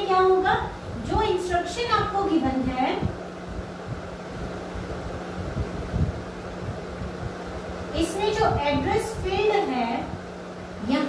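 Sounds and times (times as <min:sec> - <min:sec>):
low rumble on microphone: 0:00.0 - 0:11.0
steady low hum: 0:00.0 - 0:11.0.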